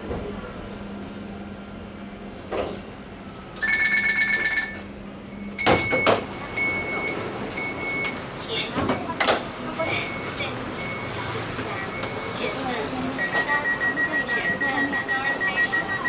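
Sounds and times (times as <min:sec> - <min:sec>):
tram running noise: 0:00.0 - 0:16.0
tram doors thumping shut: 0:05.5 - 0:09.6
fast two-tone beeping: 0:13.2 - 0:16.0
single-tone beeps: 0:13.2 - 0:16.0.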